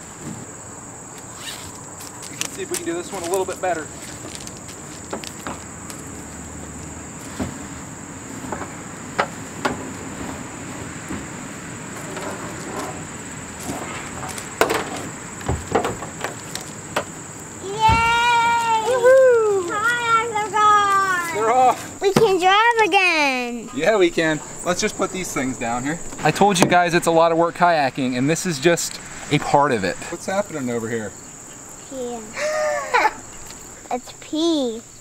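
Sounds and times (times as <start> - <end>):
high insect buzz: 0.0 - 35.0
child calling out: 17.6 - 23.6, 31.9 - 32.5.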